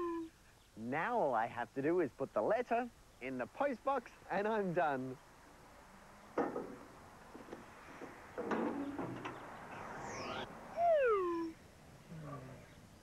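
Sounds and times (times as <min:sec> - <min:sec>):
soft low falling glide: 0:08.7 - 0:11.6
falling slide-whistle glide: 0:09.7 - 0:11.6
high rising and falling whistle: 0:09.7 - 0:11.6.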